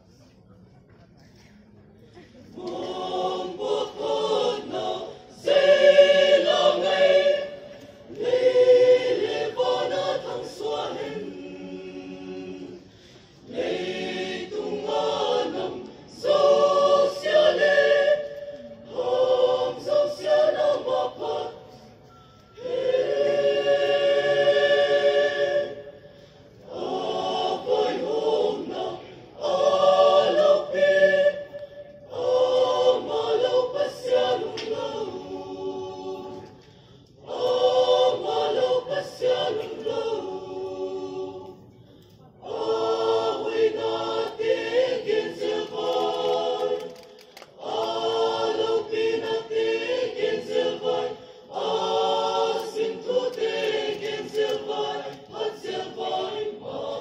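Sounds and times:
mixed choir singing: 2.4s - 57.0s.

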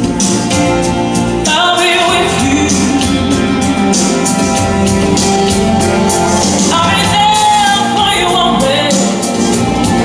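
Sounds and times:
band accompaniment: 0.0s - 10.0s
man singing into microphone: 1.5s - 4.5s.

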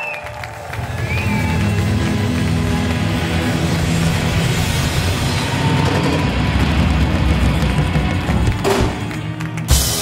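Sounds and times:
rock band playing: 0.8s - 10.0s
drum and cymbal hit: 9.7s - 10.0s.

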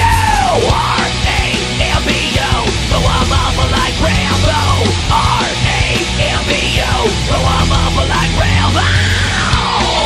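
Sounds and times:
punk rock song: 0.0s - 10.0s.

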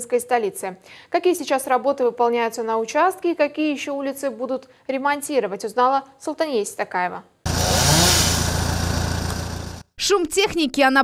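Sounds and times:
chainsaw engine running: 7.5s - 9.8s.

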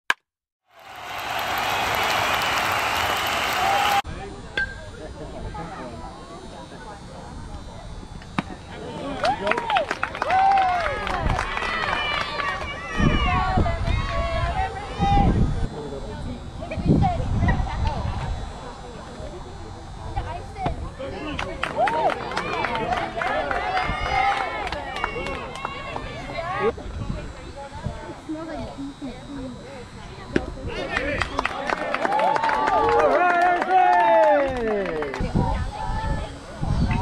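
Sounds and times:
open-air ambience: 0.7s - 37.0s.

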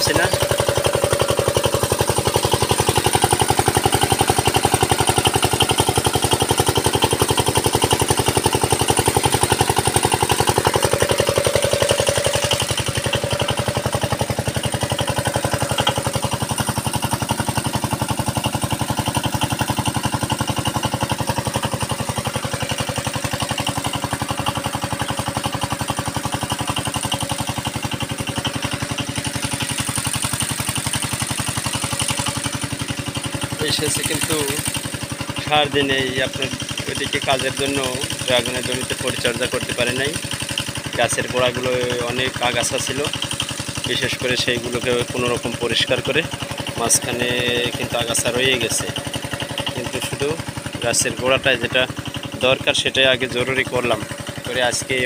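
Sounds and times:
small engine running: 0.0s - 55.0s.

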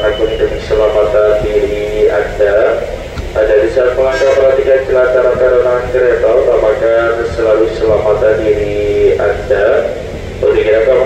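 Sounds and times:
loudspeaker announcement voice: 0.0s - 11.0s.

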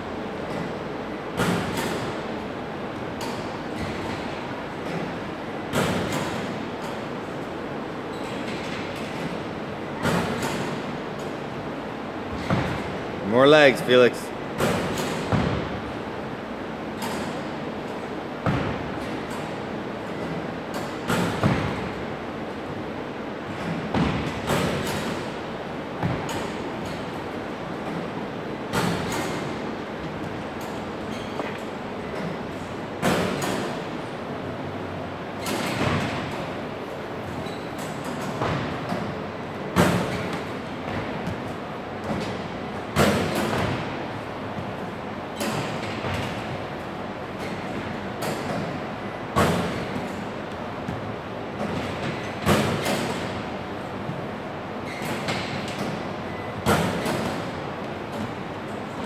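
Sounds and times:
basketballs thudding in gym: 0.4s - 2.3s, 3.0s - 7.1s, 8.1s - 11.5s, 12.2s - 13.3s, 14.6s - 16.3s, 17.0s - 34.0s, 35.4s - 59.0s.

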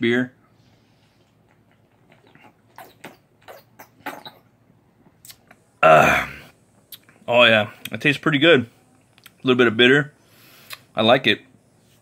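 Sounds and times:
man gulping and swallowing: 1.2s - 7.2s.

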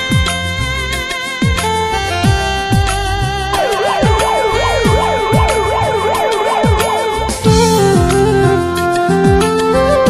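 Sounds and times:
held synth note: 3.5s - 8.2s
electronic line sweeping: 3.5s - 8.3s
steady drum beat: 3.6s - 8.4s.

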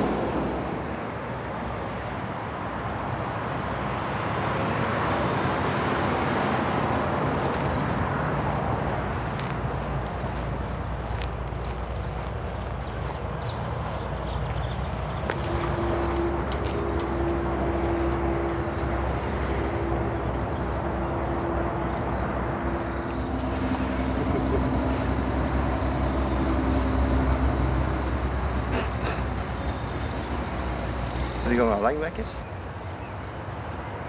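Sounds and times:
road traffic rumble: 0.0s - 34.0s
vehicle engine drone: 0.0s - 34.0s.

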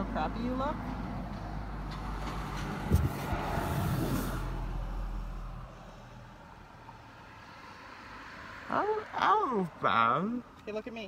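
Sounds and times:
sharp thump: 2.6s - 4.2s.

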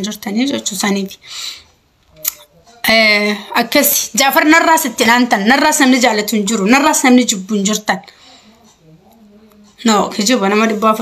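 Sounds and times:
woman speaking: 0.0s - 1.3s, 2.8s - 8.1s, 9.7s - 11.0s
short breath: 8.1s - 8.7s.

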